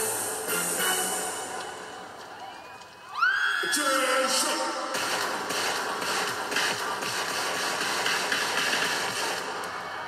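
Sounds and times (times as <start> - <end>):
live electronic pop music: 0.0 - 2.1, 4.0 - 9.8.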